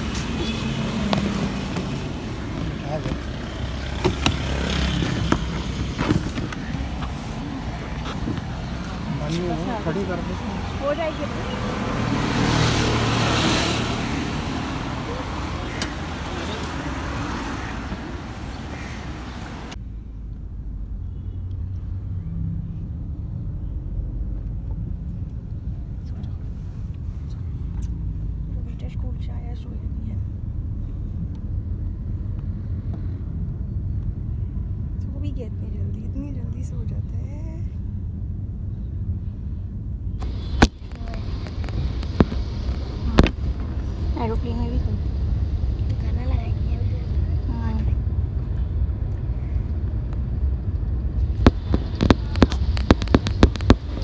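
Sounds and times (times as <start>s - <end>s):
car engine and road noise: 0.0s - 54.0s
outdoor street noise: 0.0s - 54.0s.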